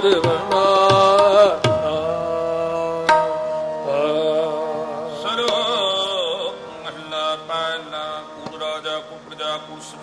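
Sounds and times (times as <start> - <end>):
tabla stroke: 0.0 - 4.0
harmonium chords: 0.0 - 10.0
man singing: 0.0 - 10.0.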